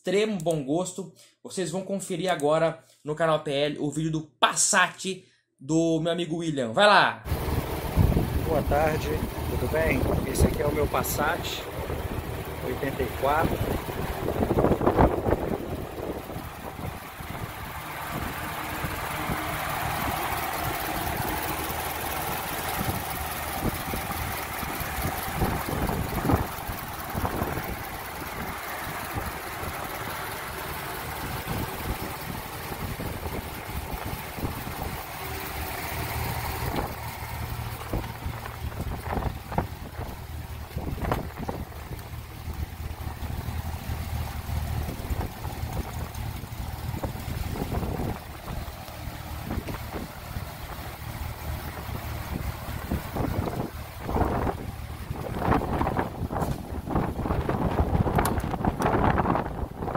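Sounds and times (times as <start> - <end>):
car engine idling: 7.3 - 59.9
wind on microphone: 52.3 - 59.9.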